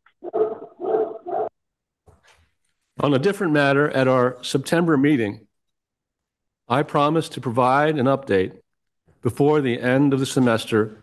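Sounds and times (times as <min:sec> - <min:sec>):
man speaking into a microphone: 0:03.0 - 0:05.5, 0:06.6 - 0:08.6, 0:09.2 - 0:11.0.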